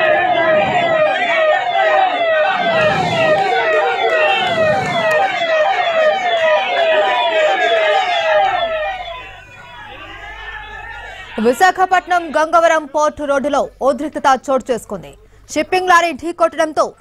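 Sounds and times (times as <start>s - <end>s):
emergency siren falling sweeps: 0.0s - 12.0s
crowd voices: 0.0s - 14.4s.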